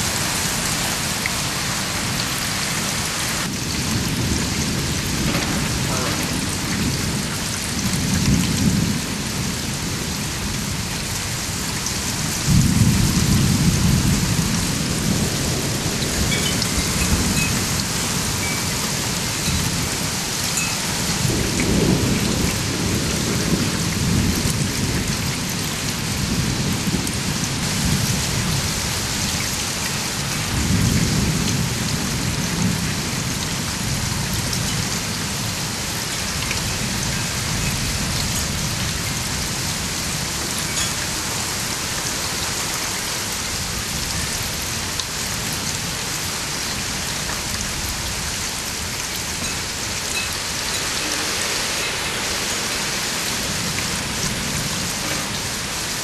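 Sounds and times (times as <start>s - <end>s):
heavy rain: 0.0s - 56.0s
thunder rolling: 3.4s - 9.4s.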